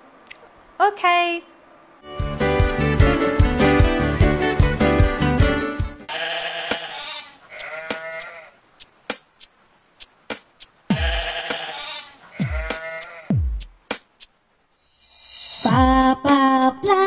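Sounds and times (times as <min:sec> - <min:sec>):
sheep bleating: 0:06.1 - 0:08.6, 0:10.9 - 0:13.4.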